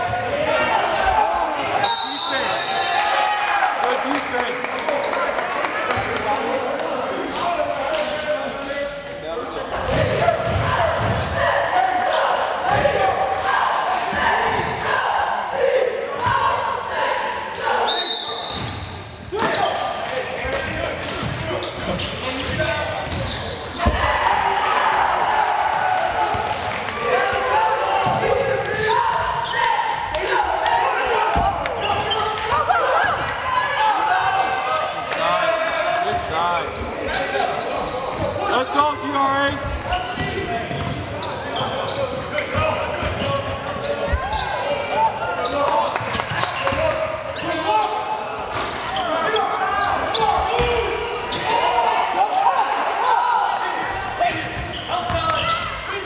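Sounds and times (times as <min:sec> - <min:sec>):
voices echoing in gym: 0:00.0 - 0:56.0.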